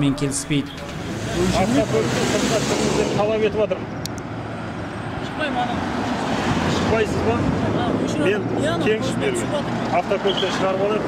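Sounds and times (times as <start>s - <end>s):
people talking: 0.0s - 3.8s
road traffic noise: 0.0s - 11.0s
vehicle passing close by: 0.8s - 11.0s.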